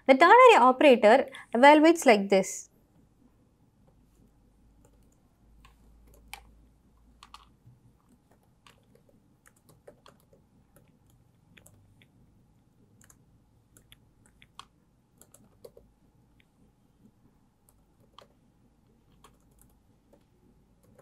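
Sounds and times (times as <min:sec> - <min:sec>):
laptop keyboard typing: 0:04.7 - 0:21.0.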